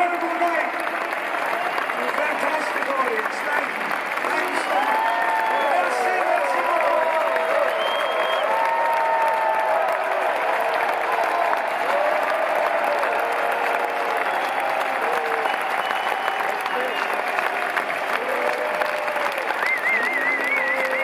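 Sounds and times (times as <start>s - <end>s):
crowd clapping: 0.0s - 21.0s
crowd shouting and cheering: 0.0s - 21.0s.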